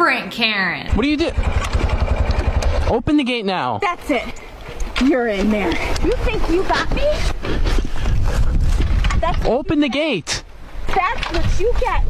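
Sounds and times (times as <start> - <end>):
quad engine idling: 0.9 - 2.9
knocks and rattles: 8.1 - 9.7, 10.9 - 12.0.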